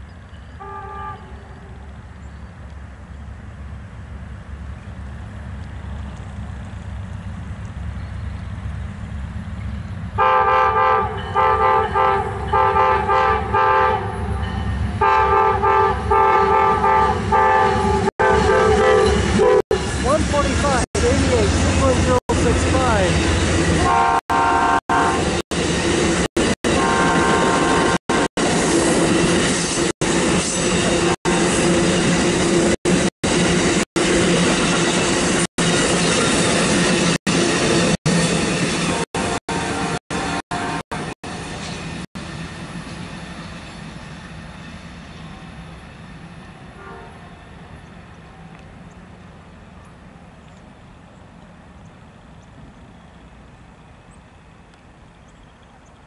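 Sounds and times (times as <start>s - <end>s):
loud diesel locomotive: 0.0s - 56.0s
train wheels rumbling on rail: 0.0s - 56.0s
train horn blasts: 0.6s - 1.8s, 10.2s - 14.4s, 15.0s - 19.9s, 23.8s - 25.4s, 26.6s - 28.3s, 38.9s - 41.2s, 46.7s - 47.4s.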